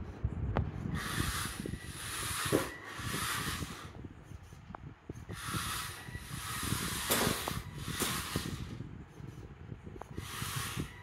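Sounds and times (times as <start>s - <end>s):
chassis and wheels rattling: 0.7s - 11.0s
small motors whirring: 0.8s - 11.0s.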